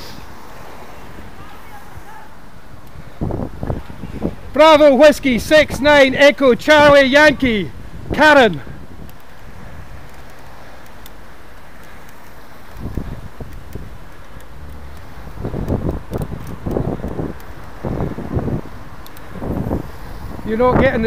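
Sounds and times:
low road rumble: 0:00.0 - 0:21.0
wind buffeting microphone: 0:00.0 - 0:21.0.

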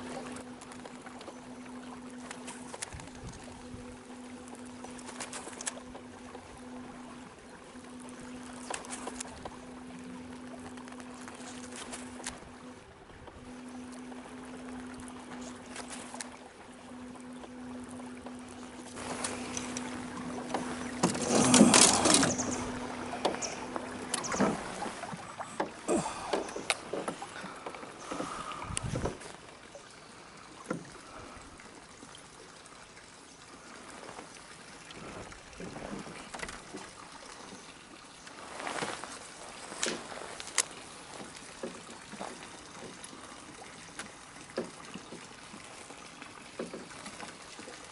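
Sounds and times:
electric motor humming: 0:00.0 - 0:29.3.

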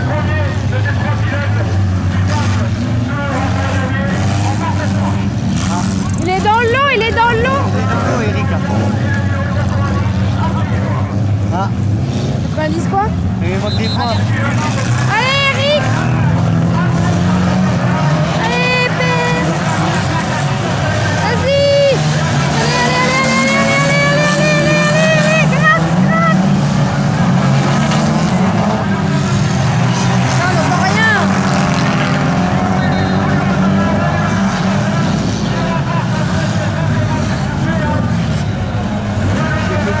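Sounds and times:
engine revving: 0:00.0 - 0:40.0
stock car engines running hard: 0:00.0 - 0:40.0.

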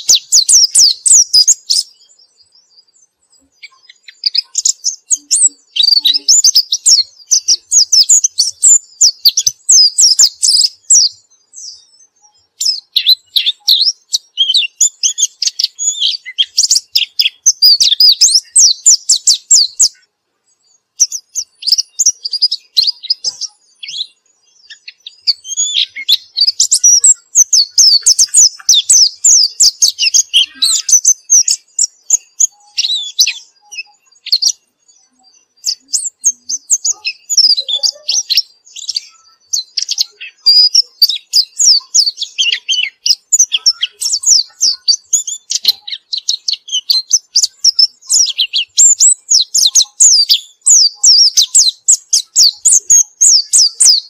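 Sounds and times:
bird twittering song: 0:00.0 - 0:54.0.

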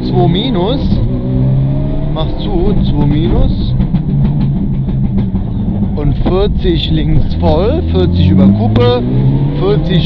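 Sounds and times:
rally car engine: 0:00.0 - 0:10.0.

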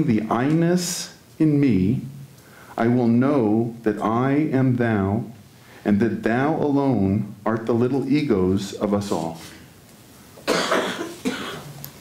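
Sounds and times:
man coughing: 0:10.4 - 0:11.7.

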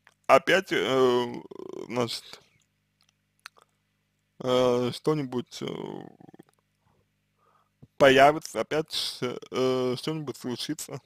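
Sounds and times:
man speaking: 0:00.3 - 0:02.4, 0:04.4 - 0:06.5, 0:08.0 - 0:11.0
mouth click: 0:03.0 - 0:03.7.

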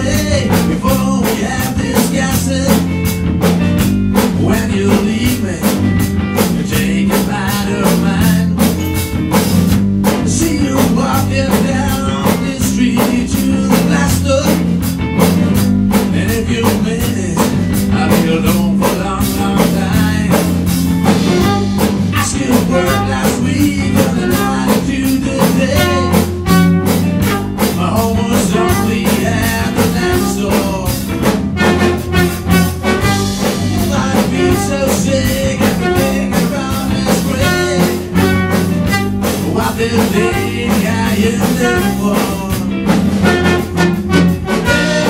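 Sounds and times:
drum kit: 0:00.0 - 0:45.0
electric bass guitar: 0:00.0 - 0:45.0
electric guitar: 0:00.0 - 0:45.0
trumpet playing lead line: 0:20.1 - 0:45.0.

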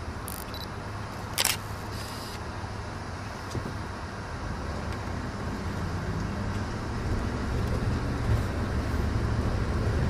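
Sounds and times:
low rumble of car interior: 0:00.0 - 0:10.0
camera shutter click: 0:00.3 - 0:00.7, 0:01.4 - 0:02.4.

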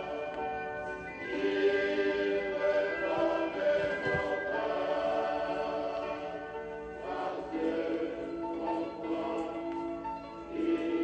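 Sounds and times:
choir singing a hymn: 0:00.0 - 0:11.0.

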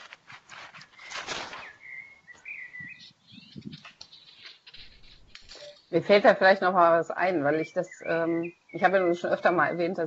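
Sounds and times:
brief rustle: 0:00.0 - 0:01.9
bird chirping: 0:00.9 - 0:10.0.

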